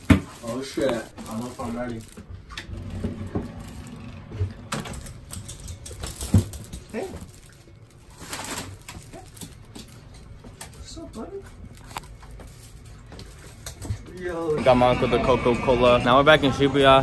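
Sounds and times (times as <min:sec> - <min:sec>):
footsteps: 0:00.0 - 0:14.9.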